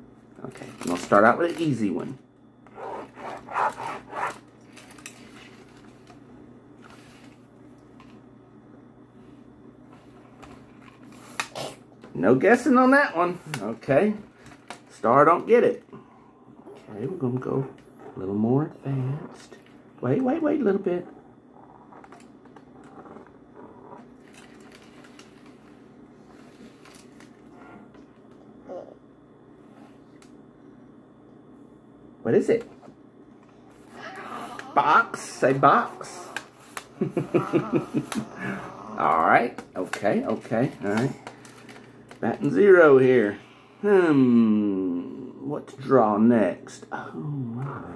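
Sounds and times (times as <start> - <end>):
stylus scratching on drawing board: 2.7 - 4.4.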